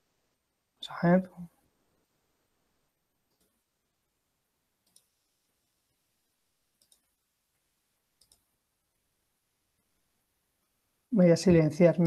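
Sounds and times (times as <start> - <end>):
faint computer mouse clicks: 3.3 - 3.6, 4.8 - 5.2, 6.8 - 7.1, 8.2 - 8.5.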